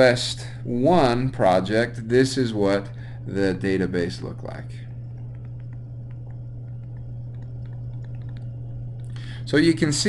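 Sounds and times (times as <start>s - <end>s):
low electrical hum: 0.0s - 10.0s
light clicks and taps: 5.2s - 9.2s.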